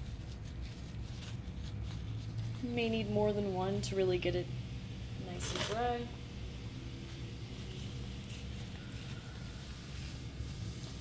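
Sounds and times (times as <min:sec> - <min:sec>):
tissue rustling on glass: 0:00.0 - 0:03.6, 0:06.7 - 0:11.0.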